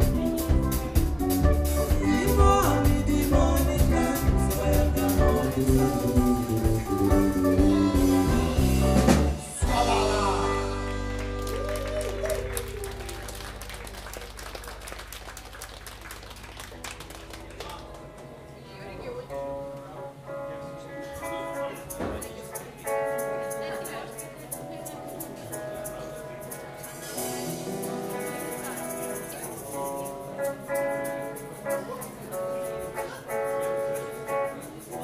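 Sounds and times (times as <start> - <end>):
guitar notes: 0.0 - 14.2, 16.7 - 35.0
live rock band playing: 0.0 - 35.0
audience applause: 10.6 - 18.3.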